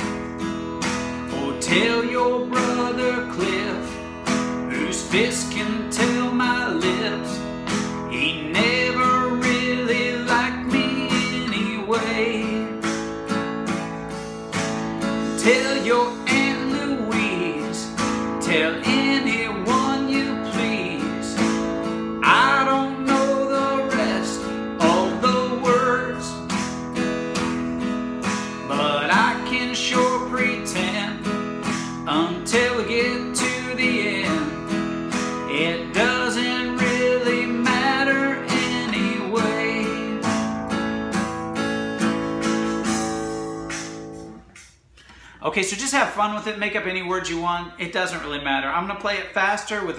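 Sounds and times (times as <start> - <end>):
acoustic guitar strumming: 0.0 - 45.4.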